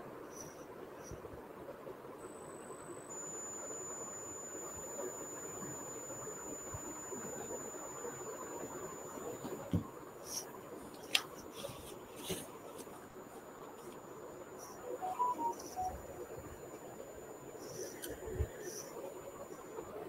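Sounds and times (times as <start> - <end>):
faint high-pitched whine: 0.0 - 20.0.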